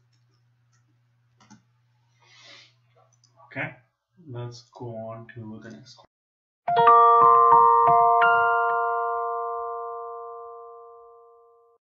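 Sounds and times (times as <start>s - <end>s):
jingle chord ringing out: 6.7s - 11.8s.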